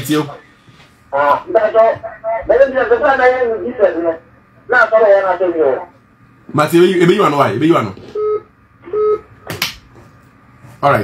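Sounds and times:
phone line tone: 0:08.2 - 0:09.3.

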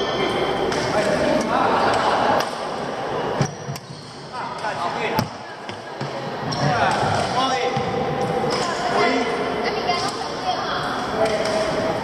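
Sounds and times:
players' voices: 0:00.0 - 0:12.0
rackets hitting shuttlecock: 0:00.6 - 0:02.7, 0:03.4 - 0:08.8, 0:11.2 - 0:11.9.

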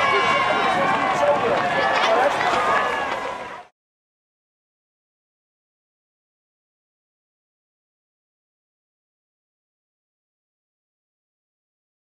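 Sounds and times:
crowd shouting and cheering: 0:00.0 - 0:03.7.

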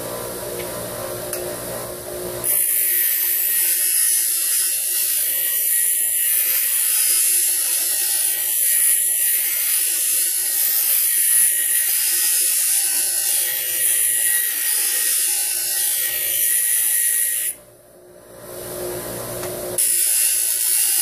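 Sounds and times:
bench grinder spinning: 0:02.4 - 0:17.6, 0:19.2 - 0:21.0
grinder wheel grinding metal: 0:02.4 - 0:17.6, 0:19.8 - 0:21.0.

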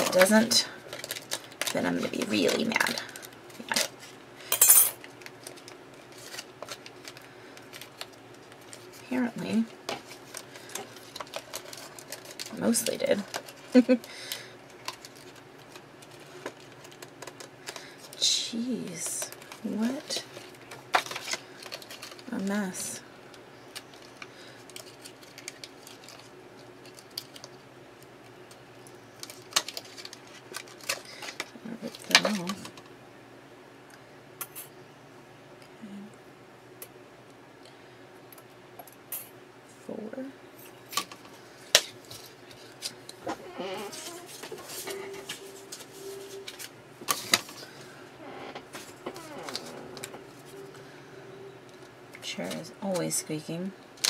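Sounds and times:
cardstock shuffling: 0:42.0 - 0:47.9.

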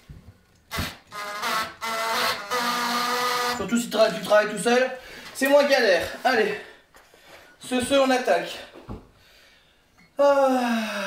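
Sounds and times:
drill driving screw into wood: 0:00.7 - 0:03.6.

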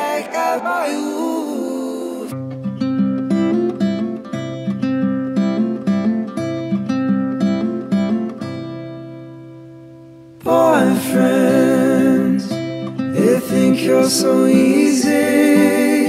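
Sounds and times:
layered singing voices: 0:00.0 - 0:02.4, 0:10.4 - 0:16.0
fingerpicked acoustic guitar: 0:00.0 - 0:16.0.

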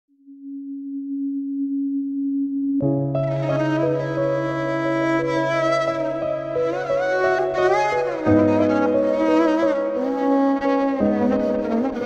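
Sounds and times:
steady electronic tone: 0:00.1 - 0:07.0.

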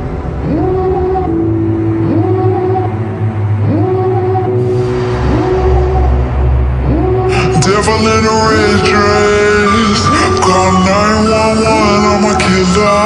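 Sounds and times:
sliding synth note: 0:00.0 - 0:13.0
steady low bass: 0:00.0 - 0:13.0.

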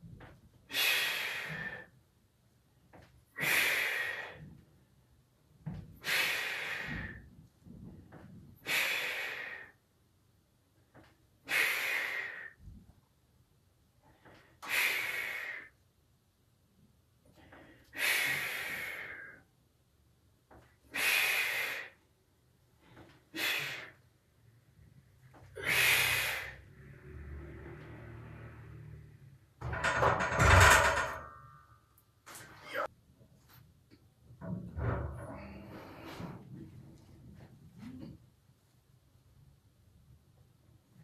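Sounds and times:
man breathing heavily: 0:00.7 - 0:02.0, 0:03.4 - 0:04.6, 0:06.0 - 0:07.3, 0:08.6 - 0:09.8, 0:17.3 - 0:19.5, 0:25.4 - 0:27.4
forceful breath: 0:25.5 - 0:29.0.

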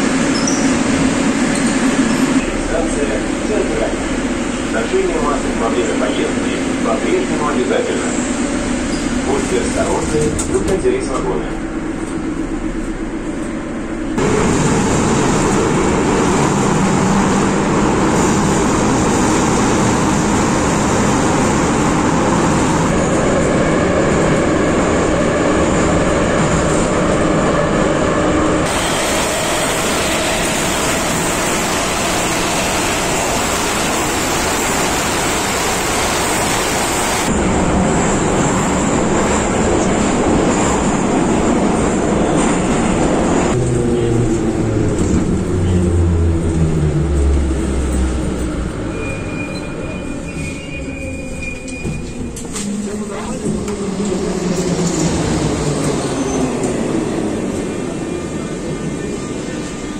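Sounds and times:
train wheels rumbling in tunnel: 0:00.0 - 0:59.9.

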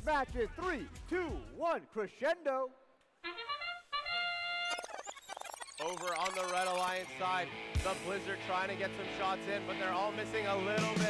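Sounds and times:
short electronic tune: 0:03.4 - 0:07.2.

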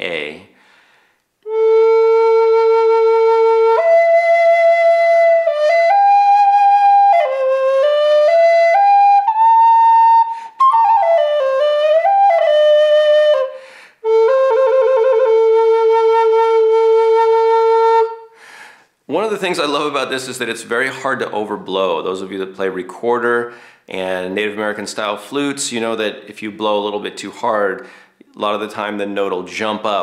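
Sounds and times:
flute playing slow melody: 0:01.4 - 0:18.3.

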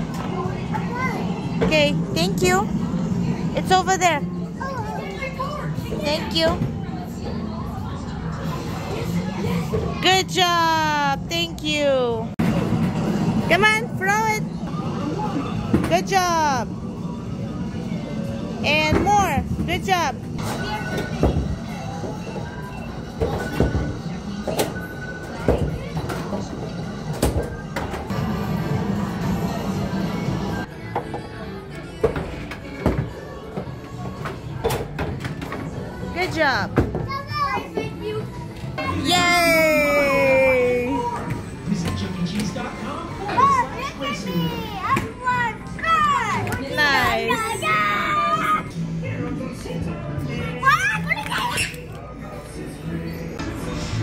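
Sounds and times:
music: 0:28.1 - 0:40.4, 0:44.7 - 0:54.0
background music: 0:44.6 - 0:54.0.

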